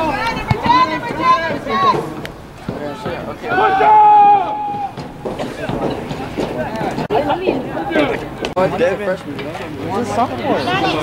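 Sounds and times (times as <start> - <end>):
voices shouting short calls: 2.9 - 5.0.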